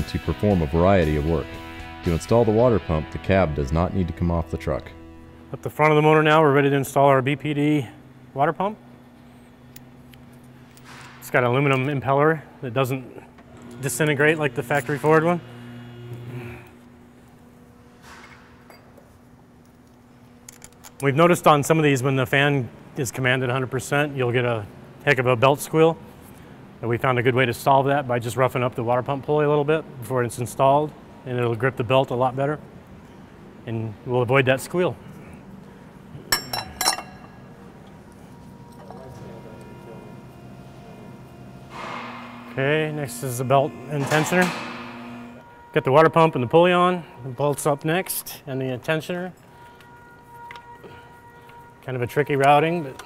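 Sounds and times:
faint hum: 0.0 - 53.0
metal-on-metal clinks: 36.3 - 37.4.

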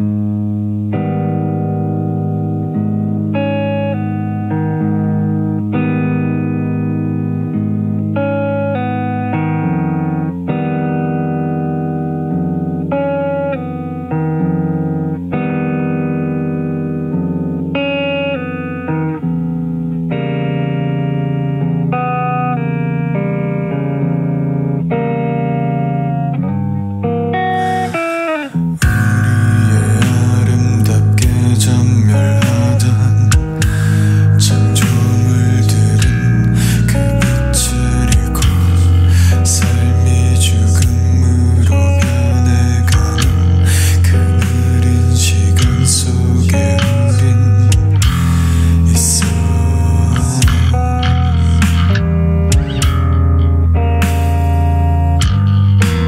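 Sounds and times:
melodic instrumental intro: 0.3 - 56.0
steady low bass: 28.6 - 56.0
rock band with drums: 28.8 - 30.5, 32.4 - 34.1, 34.8 - 35.2, 36.0 - 38.8, 39.5 - 40.0, 42.0 - 43.6, 44.2 - 44.8, 47.7 - 56.0.

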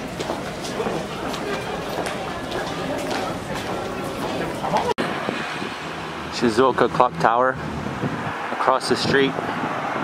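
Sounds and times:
road traffic going by: 0.0 - 10.0.

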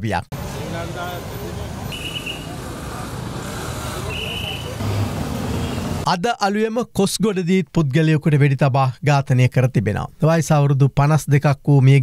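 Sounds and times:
traffic noise: 0.3 - 6.1.

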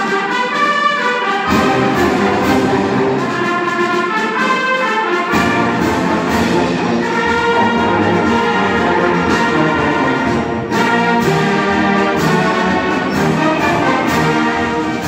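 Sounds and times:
brass instruments: 0.0 - 15.0
low instruments: 0.0 - 15.0
concert band playing chords: 1.4 - 3.7, 5.2 - 15.0.

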